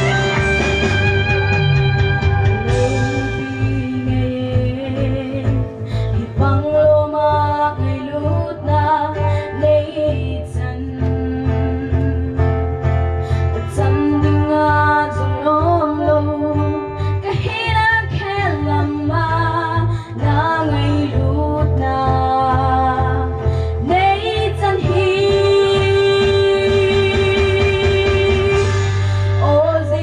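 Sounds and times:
bass line: 0.0s - 30.0s
guitar: 0.0s - 30.0s
girl singing: 6.2s - 12.4s, 13.7s - 28.7s.

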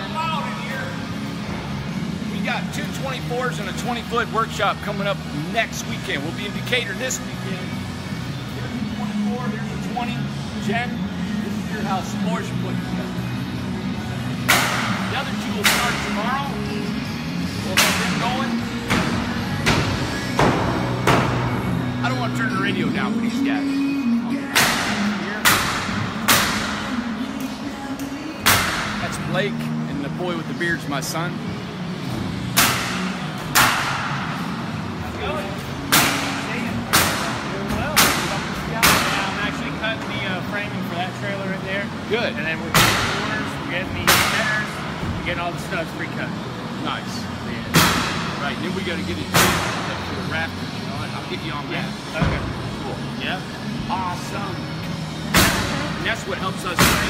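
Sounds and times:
radio playing music: 0.0s - 57.0s
nails being hammered with echo: 24.5s - 26.9s.

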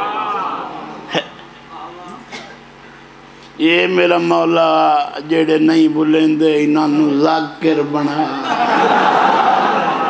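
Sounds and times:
man's voice through microphone: 3.6s - 8.5s.

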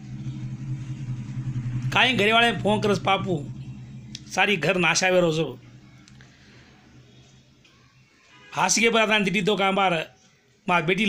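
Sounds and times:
steady low hum: 0.0s - 8.2s.

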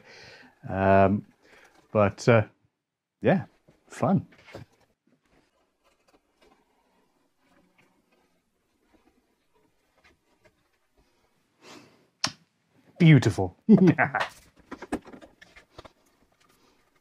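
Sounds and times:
sharp click: 12.2s - 12.4s.

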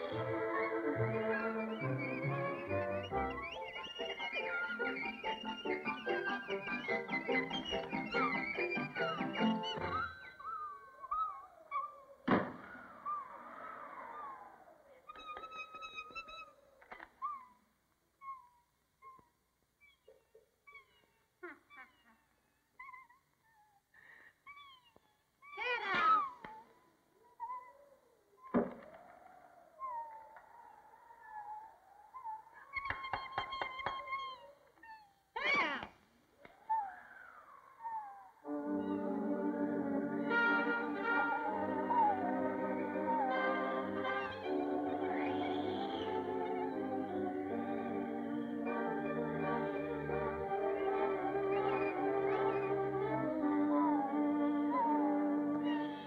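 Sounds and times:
cartoon bird chirping calls: 0.0s - 16.6s, 36.5s - 39.2s, 40.1s - 47.6s
thump: 12.2s - 12.8s, 28.5s - 28.9s.

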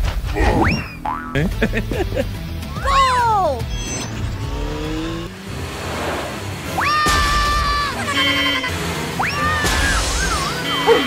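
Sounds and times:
background music: 0.1s - 11.0s.

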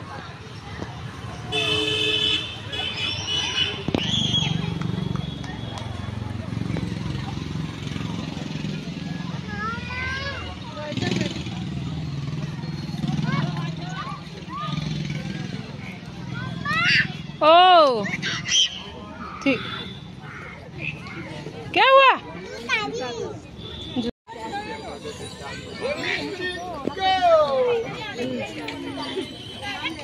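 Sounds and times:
traffic noise: 0.0s - 30.0s
vehicle horn tooting: 1.5s - 3.8s
people talking: 2.6s - 30.0s.

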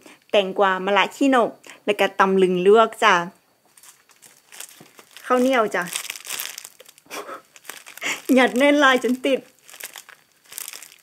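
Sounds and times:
plastic bag crinkling: 3.7s - 11.0s.

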